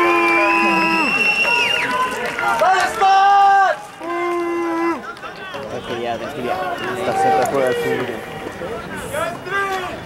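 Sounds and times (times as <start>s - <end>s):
voices calling: 0.0s - 10.0s.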